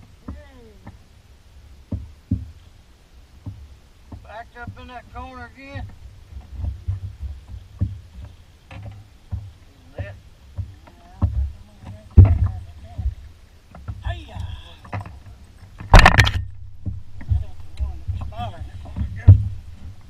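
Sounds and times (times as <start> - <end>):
person calling out: 0.2 - 0.9
knocks and thumps on boat deck: 1.8 - 2.6, 3.4 - 20.0.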